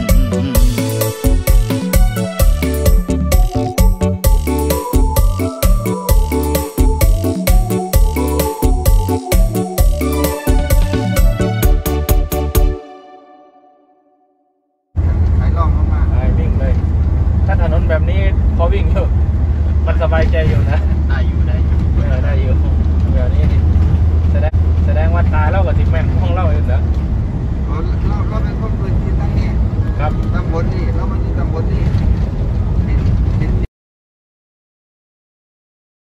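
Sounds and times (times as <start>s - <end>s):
people talking: 15.0s - 16.8s, 17.5s - 19.2s, 19.9s - 23.7s, 24.3s - 26.9s, 27.7s - 32.0s, 32.8s - 33.7s
van engine and road noise: 15.0s - 33.7s.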